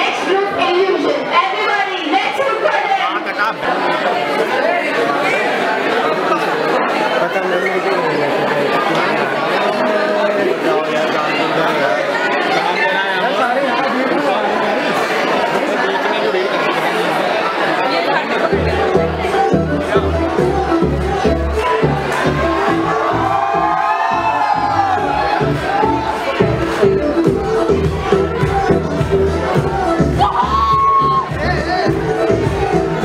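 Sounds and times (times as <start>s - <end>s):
audience chatter: 0.0s - 33.0s
dance music with heavy bass: 18.5s - 33.0s.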